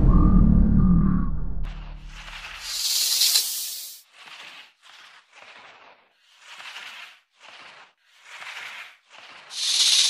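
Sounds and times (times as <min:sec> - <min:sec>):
low music rumble: 0:00.0 - 0:02.6
snake hissing: 0:02.2 - 0:04.7, 0:06.3 - 0:10.0.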